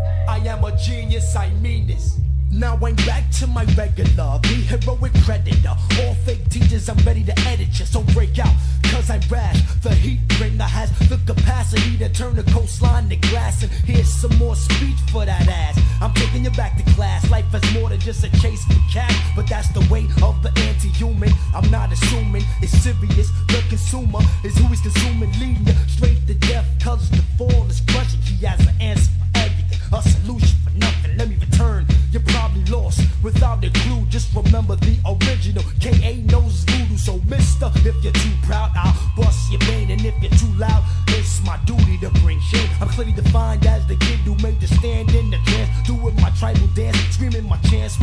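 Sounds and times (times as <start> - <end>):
deep repeating bass line: 0.0 - 48.0
rapping over a drum beat: 0.0 - 48.0.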